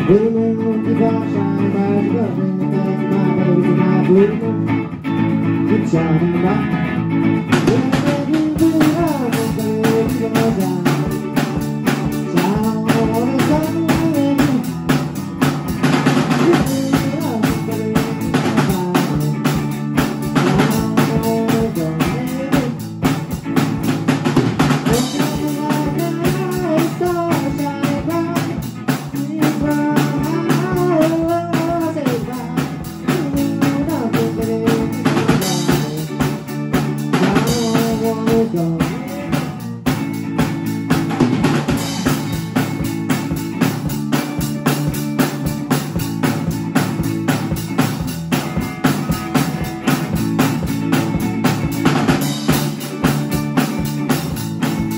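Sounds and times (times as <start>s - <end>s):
guitar melody: 0.0s - 54.9s
drum kit beat: 7.0s - 54.9s.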